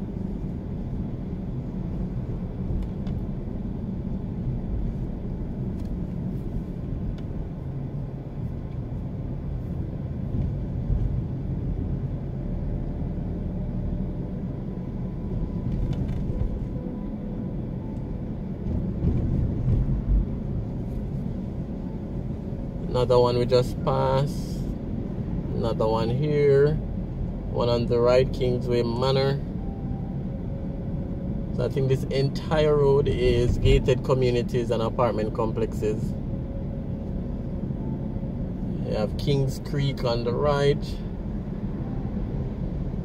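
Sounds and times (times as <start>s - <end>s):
car engine and tyre rumble: 0.0s - 43.0s.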